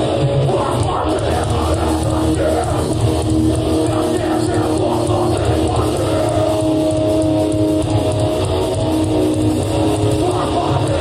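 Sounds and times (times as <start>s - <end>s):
dense drumming: 0.0s - 11.0s
electric guitars sustained chords: 0.0s - 11.0s.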